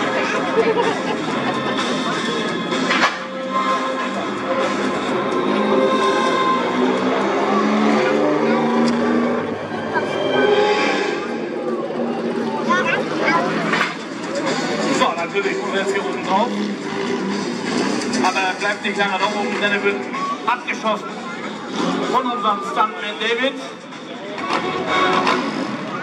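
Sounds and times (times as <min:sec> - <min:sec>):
music: 0:00.0 - 0:16.3, 0:22.3 - 0:26.0
voices: 0:00.0 - 0:17.3, 0:18.1 - 0:26.0
car engine running: 0:11.2 - 0:26.0.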